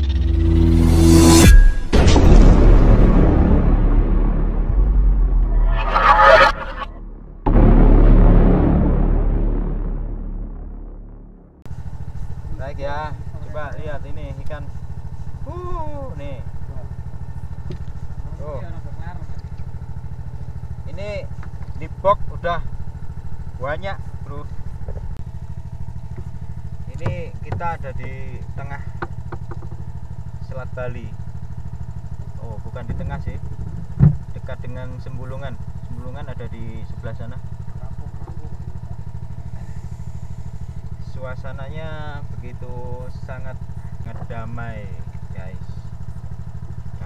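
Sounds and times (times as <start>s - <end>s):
generator engine humming: 6.9s - 47.0s
people talking: 12.6s - 14.7s, 15.4s - 16.9s, 18.2s - 19.4s, 20.9s - 22.7s, 26.9s - 28.9s, 30.5s - 31.1s, 32.4s - 33.5s, 34.4s - 38.4s, 41.1s - 45.8s
sharp knocks: 29.0s - 29.8s, 34.0s - 34.3s.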